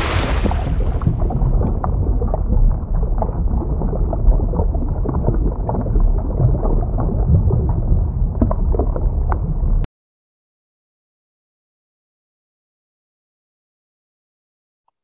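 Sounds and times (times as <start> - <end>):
splash hiss: 0.0 - 1.0
small bubble pops: 0.0 - 7.8
deep underwater rumble: 0.0 - 9.9.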